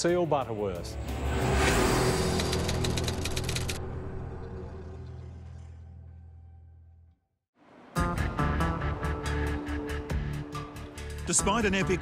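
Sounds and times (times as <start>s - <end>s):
rapid glitchy clicks: 2.3s - 3.8s.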